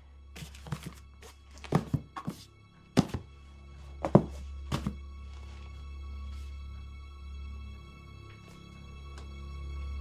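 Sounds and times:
low musical drone: 0.0s - 1.7s, 2.4s - 10.0s.

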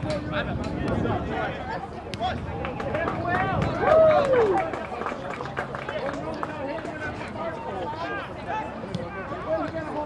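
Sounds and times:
players shouting and calling: 0.0s - 10.0s.

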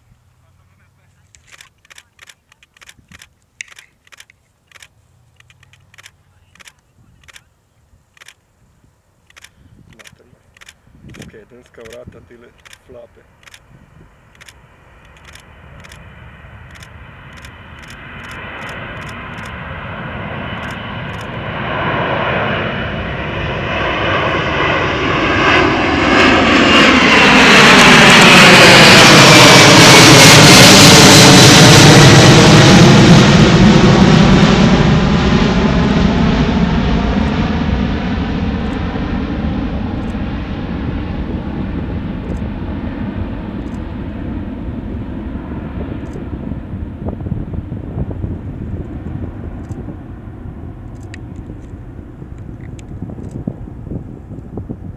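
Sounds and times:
jet airliner passing overhead: 0.0s - 54.9s.

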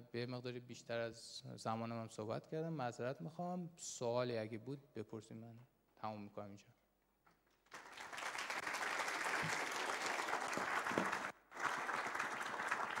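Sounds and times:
audience applauding: 7.7s - 13.0s.

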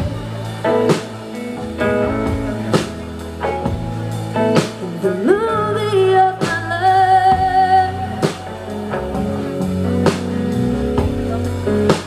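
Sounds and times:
drum and cymbal hits: 0.0s - 5.2s
bass: 0.0s - 12.0s
electric guitar: 0.0s - 12.0s.

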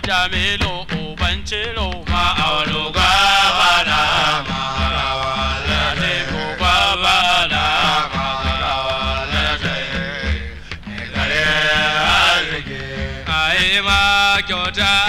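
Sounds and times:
low drum beats: 0.0s - 15.0s
person singing ornamented lines: 0.7s - 15.0s.

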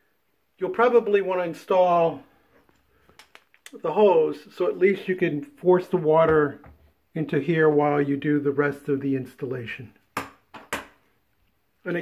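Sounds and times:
sharp knocks of hard objects: 10.2s - 11.0s.

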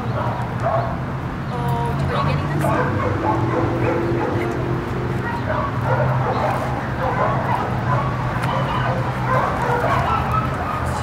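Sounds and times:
dogs barking and whining: 0.0s - 1.0s, 2.6s - 11.0s.

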